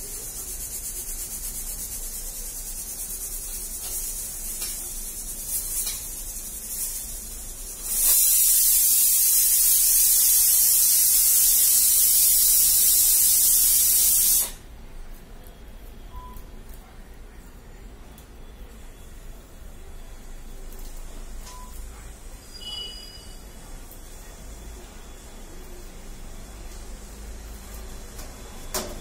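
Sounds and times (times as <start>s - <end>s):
faint hiss: 0.0s - 14.6s
loud high-pitched hiss: 0.0s - 14.6s.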